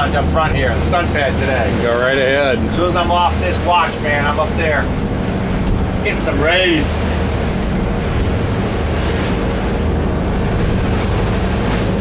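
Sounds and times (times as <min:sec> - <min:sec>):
boat engines droning: 0:00.0 - 0:12.0
wind and water rushing: 0:00.0 - 0:12.0.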